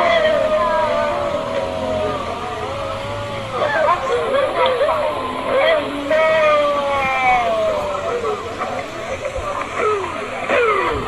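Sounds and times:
high voice holding wavering notes: 0:00.0 - 0:11.0.

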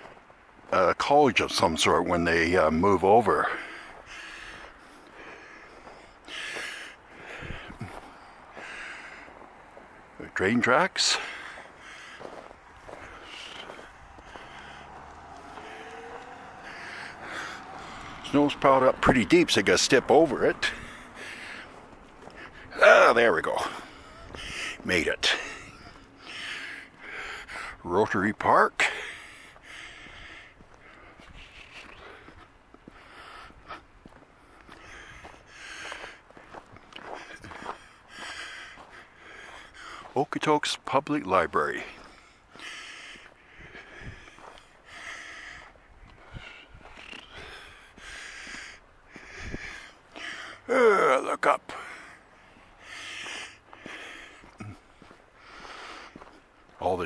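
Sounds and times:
footsteps on snow: 0:00.0 - 0:27.7, 0:28.9 - 0:50.6, 0:51.4 - 0:57.0
person breathing: 0:03.4 - 0:10.2, 0:11.1 - 0:18.3, 0:20.7 - 0:22.8, 0:25.4 - 0:27.8, 0:28.9 - 0:40.2, 0:41.9 - 0:50.8, 0:51.7 - 0:56.5
rising tone: 0:14.2 - 0:18.2.

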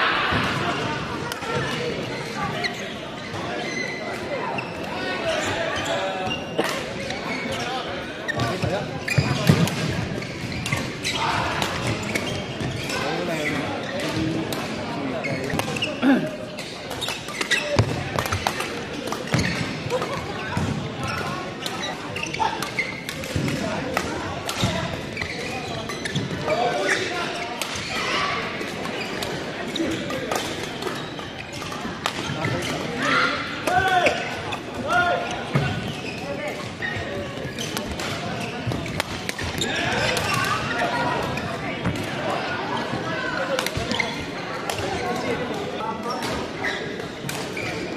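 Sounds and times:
voices in a hall: 0:00.0 - 0:47.9.

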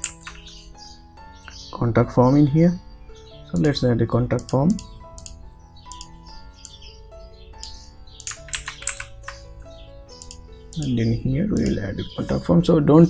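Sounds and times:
keyboard and mouse clicks: 0:00.0 - 0:00.6, 0:03.6 - 0:03.8, 0:04.4 - 0:06.8, 0:07.6 - 0:09.5, 0:10.2 - 0:10.9, 0:11.6 - 0:12.4
soft background music: 0:00.0 - 0:13.0.

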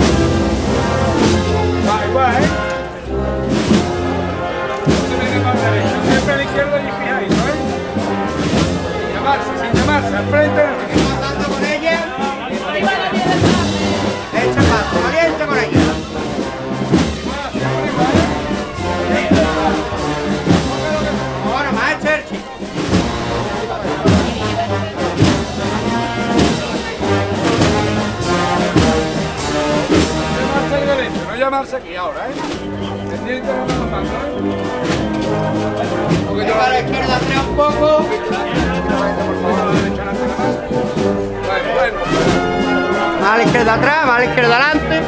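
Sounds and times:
marching band playing: 0:00.0 - 0:45.0
voices: 0:00.0 - 0:45.0.

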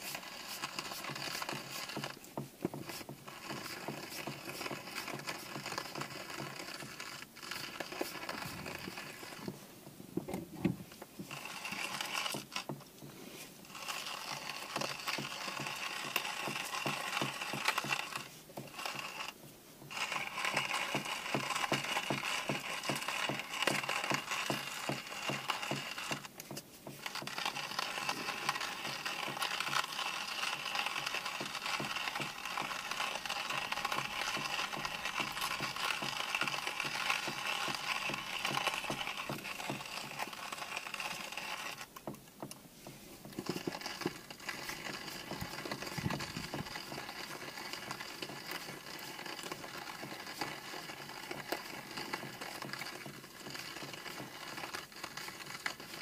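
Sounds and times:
hand-crank coffee grinder grinding: 0:00.0 - 0:56.0.

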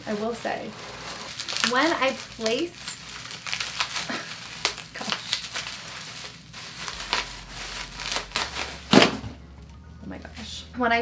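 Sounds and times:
bubble wrap crinkling and crackling: 0:00.0 - 0:09.8.

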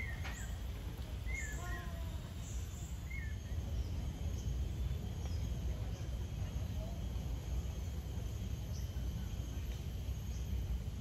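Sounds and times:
birds chirping: 0:00.0 - 0:06.7.

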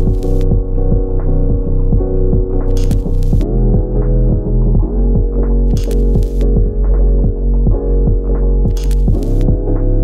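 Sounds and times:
pulsing synth bass: 0:00.0 - 0:10.0.

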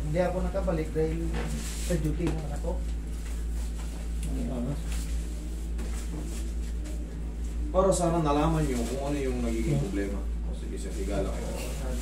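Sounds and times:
steady low hum: 0:00.0 - 0:12.0
wavering whine-like vocal sound: 0:03.5 - 0:12.0.

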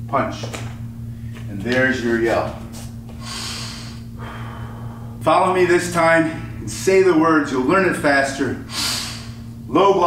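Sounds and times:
low electrical hum: 0:00.0 - 0:10.0
man breathing loudly: 0:03.1 - 0:05.2, 0:08.7 - 0:09.5.

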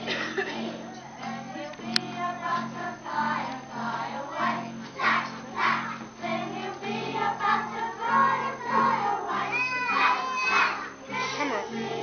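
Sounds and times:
young children singing: 0:00.0 - 0:12.0.

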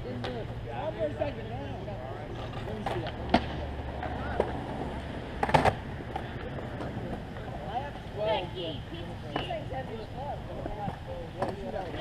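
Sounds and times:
skateboard clacks on concrete: 0:05.4 - 0:07.3.

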